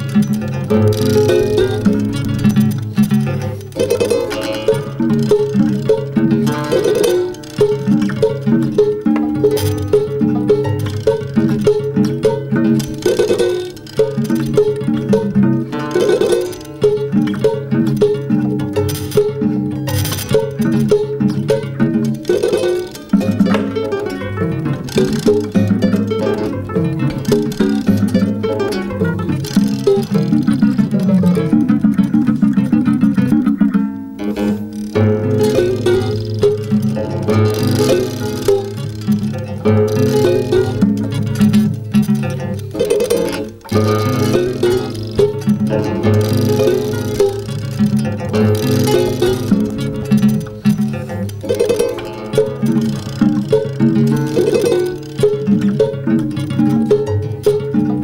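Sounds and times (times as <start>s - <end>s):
prepared classical guitar duet: 0.0s - 58.0s.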